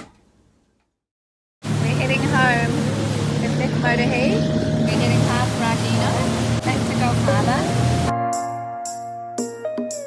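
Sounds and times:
motorboat engine running: 1.6s - 8.1s
wake water rushing: 1.6s - 8.1s
music: 6.7s - 10.0s.

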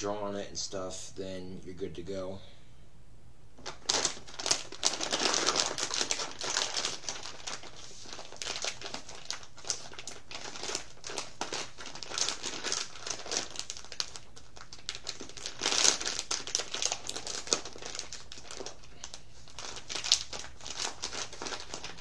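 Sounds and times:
crinkling and rustling: 3.6s - 22.0s.

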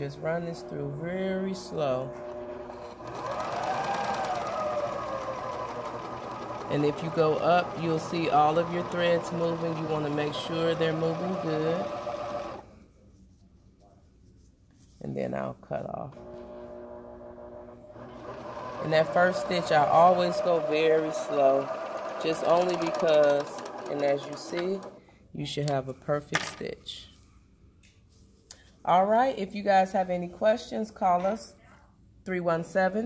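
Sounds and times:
sewing machine motor whine: 0.0s - 12.6s, 16.2s - 25.0s
fast fine stitching ticks: 2.6s - 12.6s, 18.2s - 25.0s.

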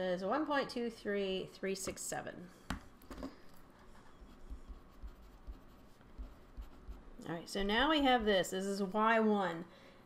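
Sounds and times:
pen scratching on paper: 3.9s - 8.4s.

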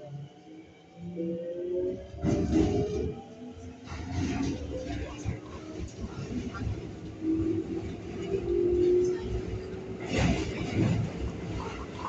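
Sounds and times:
train wheels rumbling on rail: 1.8s - 12.0s.

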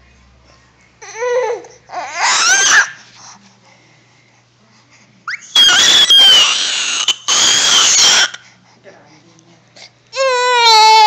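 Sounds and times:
baby shrieking: 2.0s - 3.0s, 5.3s - 8.4s, 10.2s - 11.0s.

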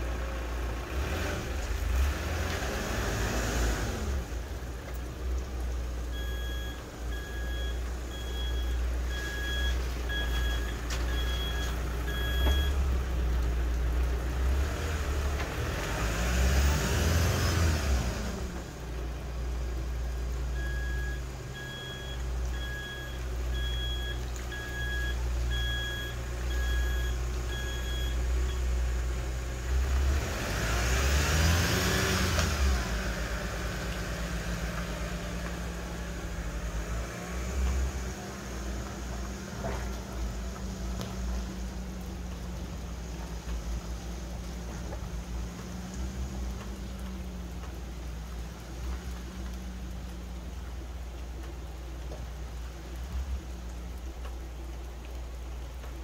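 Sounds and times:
vehicle engine climbing: 0.0s - 56.0s
electronic warning beeps: 6.2s - 12.8s, 20.6s - 28.6s.

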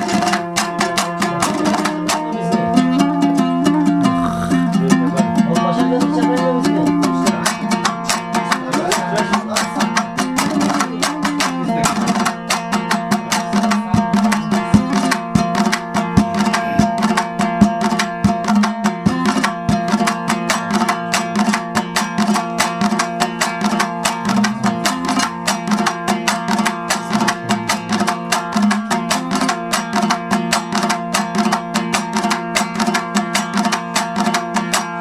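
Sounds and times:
plucked string instrument: 0.0s - 35.0s.

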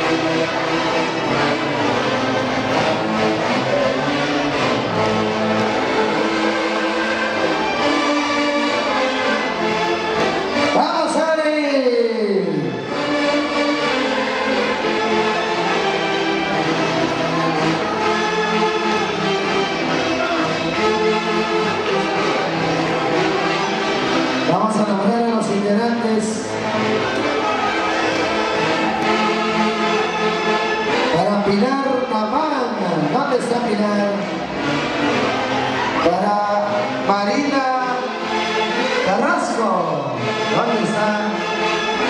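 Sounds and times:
orchestra playing dance music: 0.0s - 42.0s.

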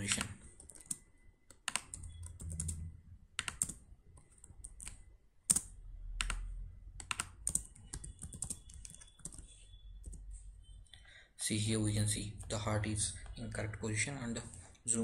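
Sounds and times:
computer keyboard typing: 0.0s - 10.3s.

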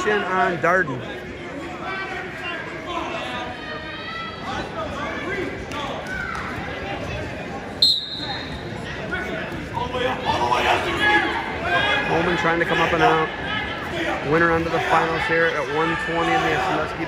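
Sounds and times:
spectators talking and calling out: 0.0s - 17.0s
referee's whistle blast: 7.8s - 8.6s.

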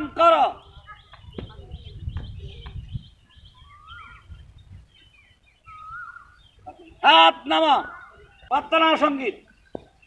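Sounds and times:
small birds chirping: 0.0s - 10.0s
wind rumble on microphone: 0.6s - 6.7s.

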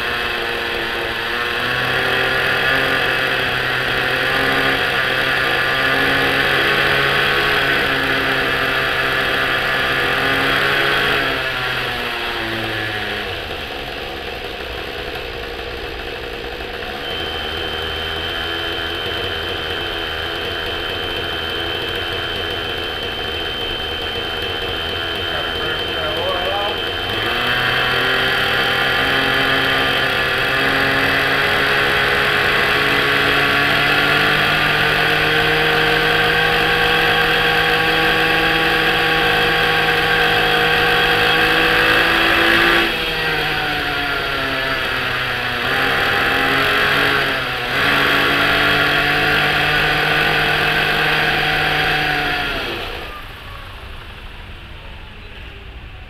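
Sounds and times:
rc helicopter engine whine: 0.0s - 56.0s.

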